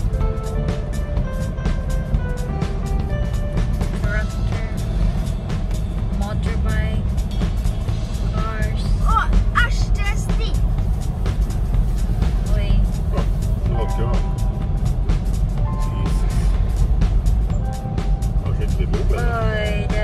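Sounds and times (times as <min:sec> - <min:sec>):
background music: 0:00.0 - 0:20.0
car driving rumble: 0:00.0 - 0:20.0.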